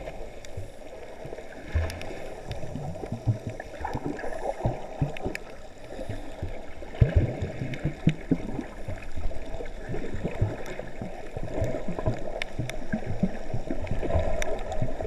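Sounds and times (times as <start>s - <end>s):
water swirling and gurgling underwater: 0.0s - 15.0s.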